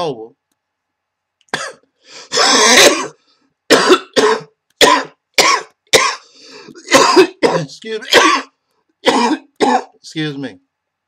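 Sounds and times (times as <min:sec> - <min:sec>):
man coughing into cloth: 0:01.5 - 0:10.0.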